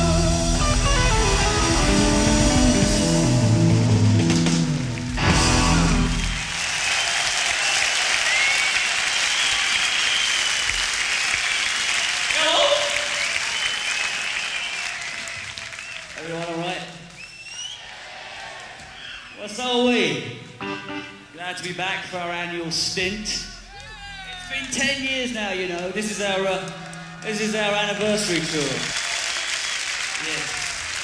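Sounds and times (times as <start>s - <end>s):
rock band electric guitar chord: 0.0s - 6.4s, 20.6s - 21.3s
audience cheering and clapping: 0.6s - 19.4s, 23.0s - 31.0s.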